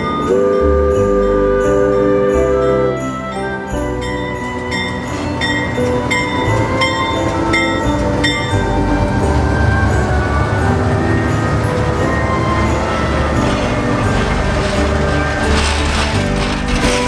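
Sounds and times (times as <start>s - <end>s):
locomotive bell ringing: 0.0s - 17.0s
train rumbling past: 0.0s - 17.0s.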